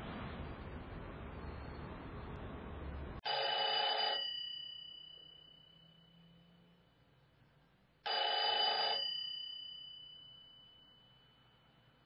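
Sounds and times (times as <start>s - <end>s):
telephone bell ringing: 3.2s - 6.8s, 8.0s - 12.0s.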